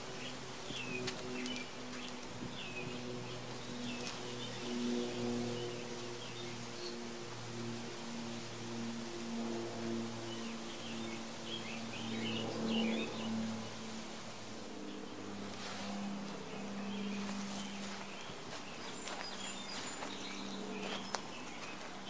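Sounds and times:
small birds chirping: 0.0 - 7.4, 10.0 - 14.1, 14.8 - 22.0
steady low hum: 0.0 - 22.0.

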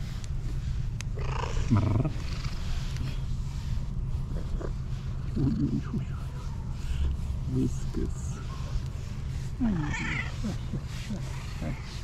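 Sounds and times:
cat purring: 4.2 - 6.3, 9.6 - 12.0.

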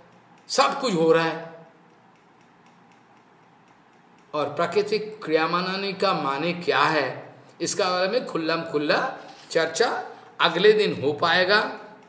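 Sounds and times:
faint regular ticking: 0.0 - 12.0
low room hiss: 0.0 - 12.0.

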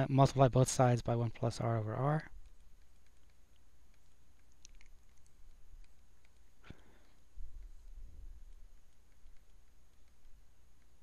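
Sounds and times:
low steady hum: 0.0 - 11.0
stylus ticking on screen: 0.0 - 11.0.

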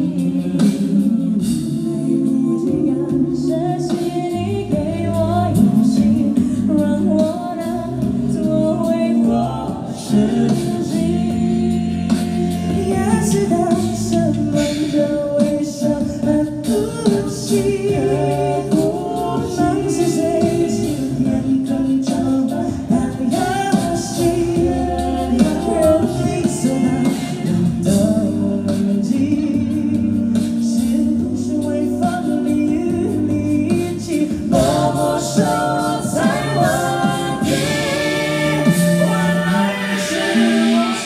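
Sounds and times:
a cappella group singing in harmony: 0.0 - 41.0.

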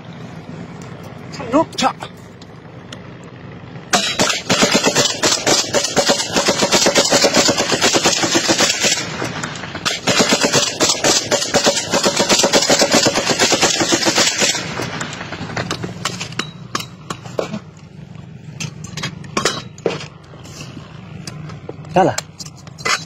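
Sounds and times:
automatic gunfire: 4.0 - 9.2, 9.8 - 14.8.

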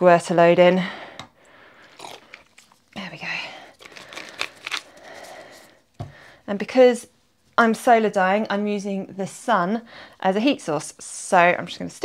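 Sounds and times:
plastic bottle crackling: 1.8 - 3.1, 3.7 - 5.7.

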